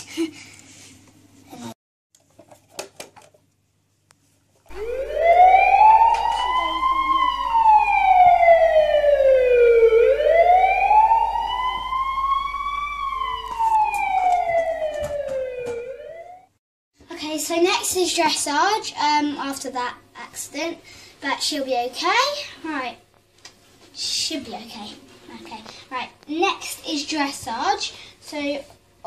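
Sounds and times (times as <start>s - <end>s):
toy electronic siren wailing: 4.7s - 16.5s.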